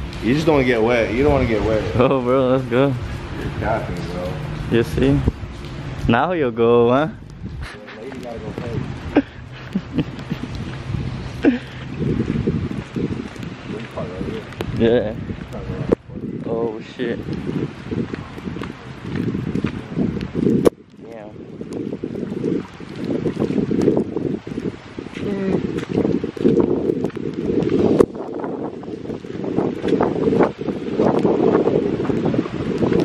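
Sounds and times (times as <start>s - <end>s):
heavy rain: 0.0s - 33.0s
wind buffeting microphone: 0.0s - 33.0s.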